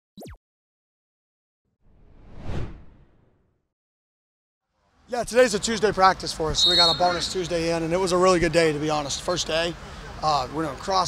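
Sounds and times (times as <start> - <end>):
whoosh: 1.9 - 3.4.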